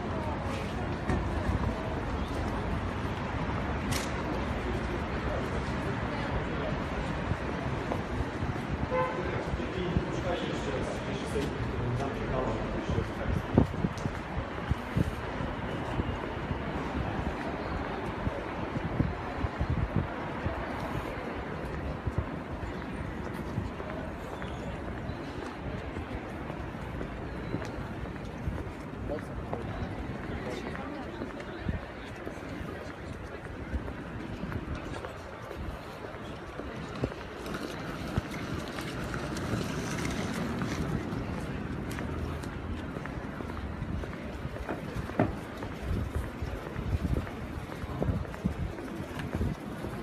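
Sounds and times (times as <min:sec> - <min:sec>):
wind rumble on microphone: 0:00.0 - 0:11.9, 0:12.5 - 0:50.0
background traffic: 0:00.0 - 0:50.0
indistinct voices nearby: 0:00.0 - 0:50.0.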